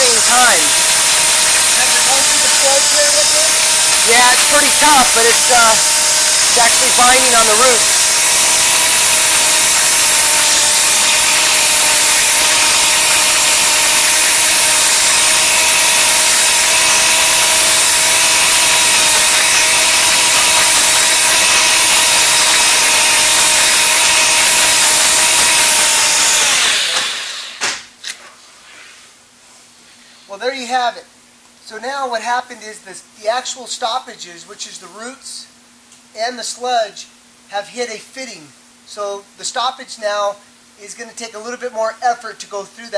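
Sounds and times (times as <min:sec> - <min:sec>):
drain-cleaning machine running: 0:00.0 - 0:27.6.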